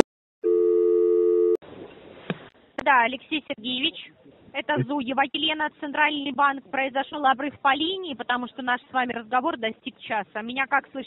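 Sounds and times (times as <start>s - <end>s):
telephone signal tone: 0.4s - 1.6s.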